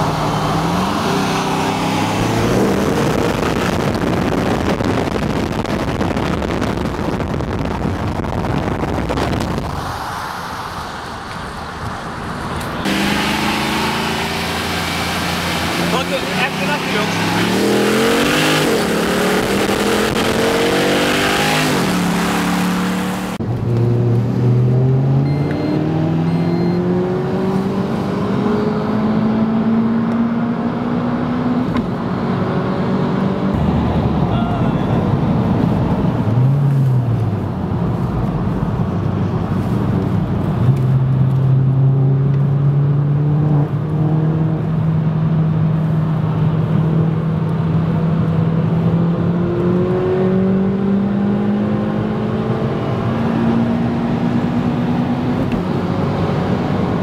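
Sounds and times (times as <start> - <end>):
car engine accelerating: 0.0 - 9.8, 11.6 - 57.0.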